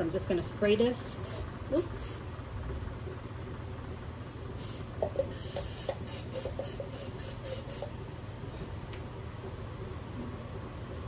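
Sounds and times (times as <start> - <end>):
aerosol spray hissing: 1.1 - 2.2, 4.6 - 7.9.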